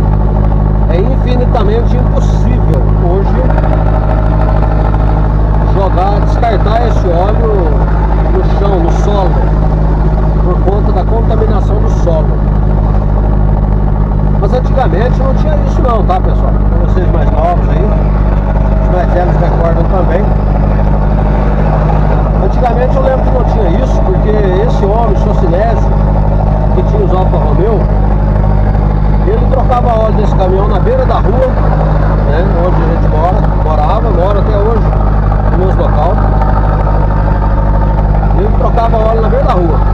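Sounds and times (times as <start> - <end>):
truck engine droning: 0.0 - 39.9
man talking: 0.9 - 3.6, 5.7 - 9.4, 10.4 - 12.4, 14.4 - 18.0, 18.8 - 20.3, 22.4 - 25.9, 26.8 - 27.9, 29.2 - 31.6, 32.2 - 34.9, 35.5 - 36.2, 38.4 - 39.9.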